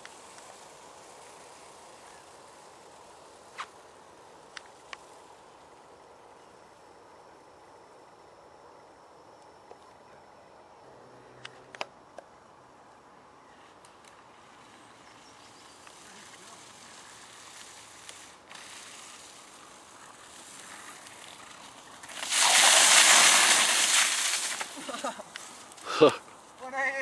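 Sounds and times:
tyres rolling over wet grass: 0.0 - 6.0, 13.7 - 27.0.

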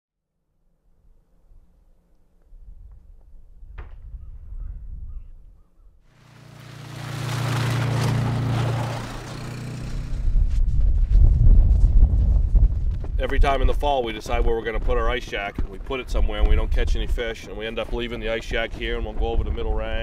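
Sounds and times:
wind rumbling on microphone: 2.4 - 5.7, 7.7 - 20.0
vehicle engine hum: 6.1 - 11.2.

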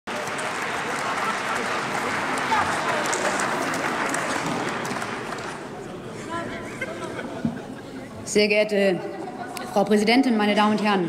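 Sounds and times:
people applauding: 0.1 - 6.1.

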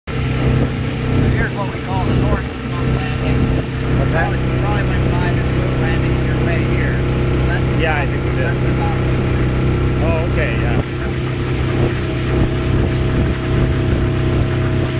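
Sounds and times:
motorboat engine humming: 0.1 - 14.9
voices: 1.1 - 14.6.

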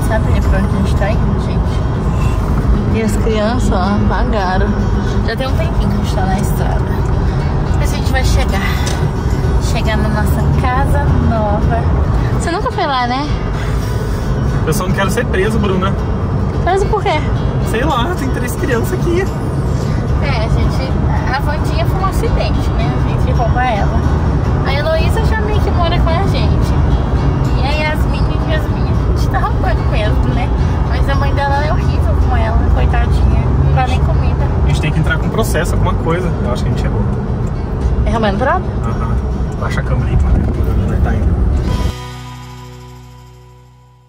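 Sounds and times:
car cabin road rumble: 0.0 - 42.1
background music: 0.0 - 44.0.

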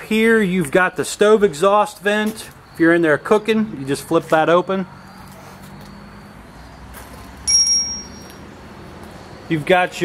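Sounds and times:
high-pitched metallic ring: 7.5 - 8.4.

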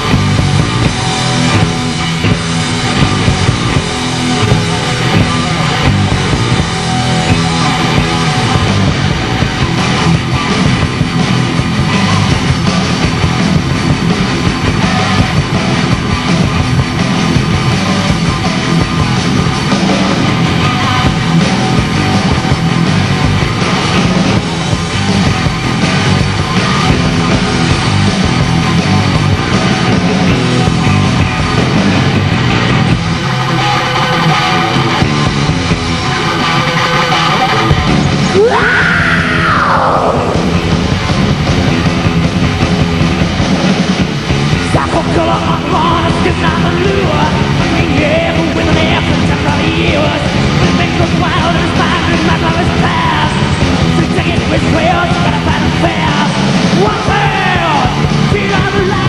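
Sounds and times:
electric guitar: 0.0 - 59.0
heavy metal band playing live: 0.0 - 59.0
high wailing line: 36.0 - 41.0.

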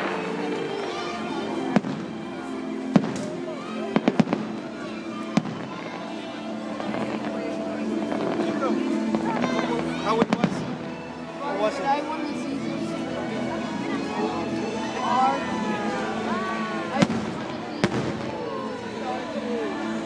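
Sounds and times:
firework bangs: 0.0 - 2.3, 2.9 - 6.1, 10.2 - 10.8, 17.0 - 18.5
music playing: 0.0 - 20.0.

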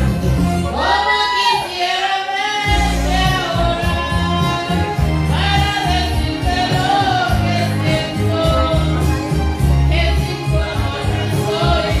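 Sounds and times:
karaoke backing track with bass: 0.0 - 12.0
woman singing into a microphone: 0.8 - 12.0.

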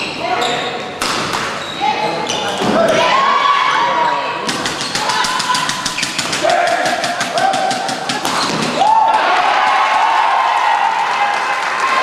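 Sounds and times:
shoes squeaking on court: 0.0 - 3.0, 3.7 - 6.4, 8.1 - 8.8.

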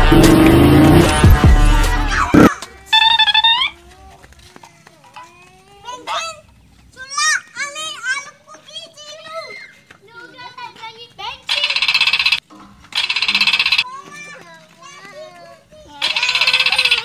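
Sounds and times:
children shouting: 1.0 - 6.4, 7.0 - 10.6, 13.8 - 17.0
children chattering: 1.9 - 12.4, 13.1 - 17.0.

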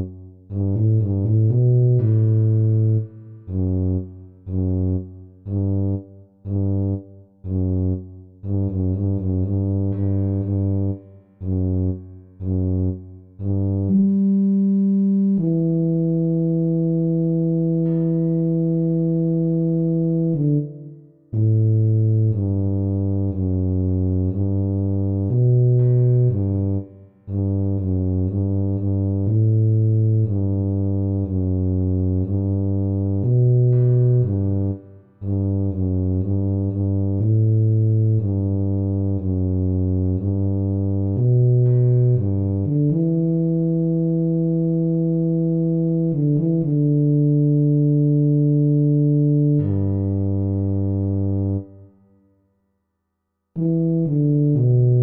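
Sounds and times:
tuba bass line: 0.0 - 52.0, 53.6 - 55.0.

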